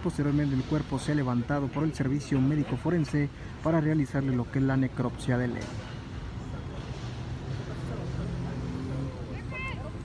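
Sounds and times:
vehicle engine humming: 0.0 - 10.0.

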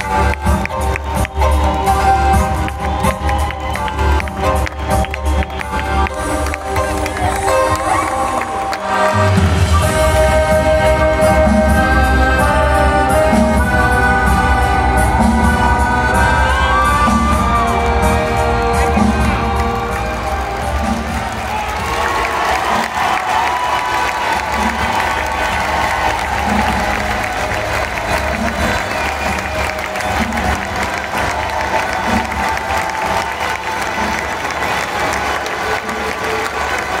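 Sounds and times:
crowd applauding and cheering: 0.0 - 37.0
tango music playing: 0.0 - 37.0.

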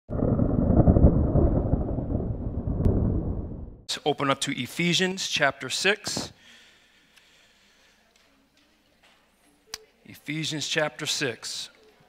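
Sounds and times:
loud low rumbling: 0.1 - 3.9.

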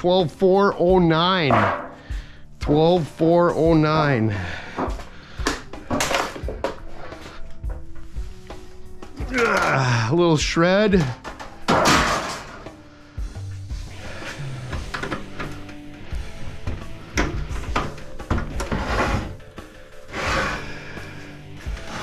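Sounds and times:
background music with low held tones: 0.0 - 22.0
knocks and scraping of sheet metal: 1.4 - 2.1, 11.2 - 12.8, 16.6 - 19.6.

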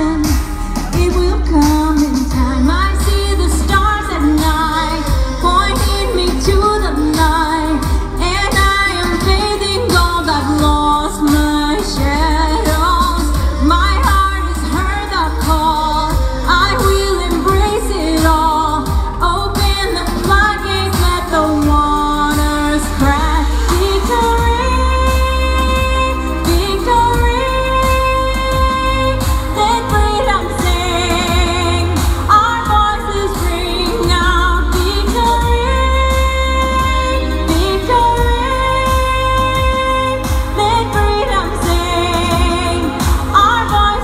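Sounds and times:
backing music with deep bass: 0.0 - 44.0
woman singing into microphone: 0.0 - 44.0.

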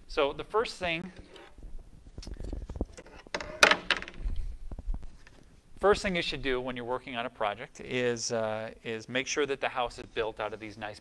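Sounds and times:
board knocking and clattering: 2.9 - 4.3.

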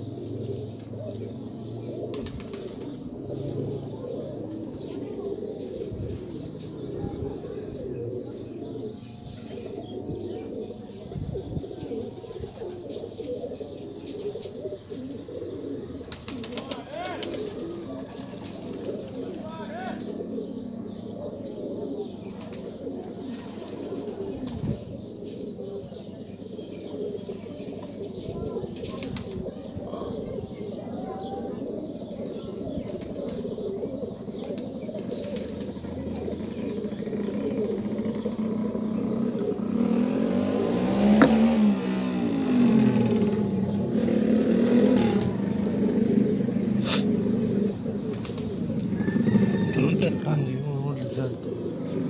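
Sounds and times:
pigeons cooing: 0.0 - 52.0.

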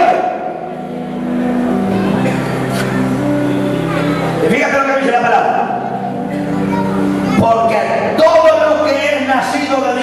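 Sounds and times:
low keyboard chords: 0.0 - 10.0.

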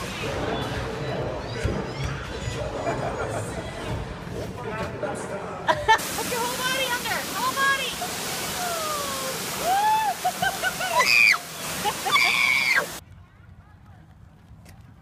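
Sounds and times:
voices: 4.7 - 11.1
waterfall pouring into pool: 6.0 - 13.0.

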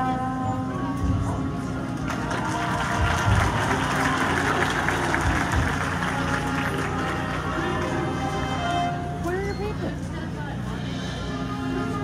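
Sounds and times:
marching band brass: 2.0 - 9.2
audience applause: 2.1 - 8.0.

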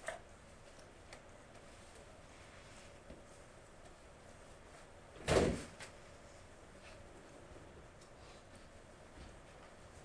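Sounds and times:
thump: 5.2 - 5.7.

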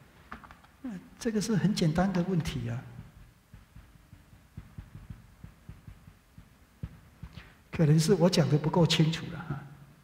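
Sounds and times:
marker tapping on whiteboard: 2.9 - 7.8.

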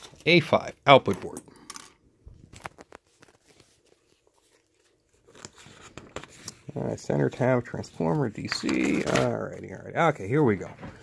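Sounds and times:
faint paper rustles: 2.4 - 11.0.

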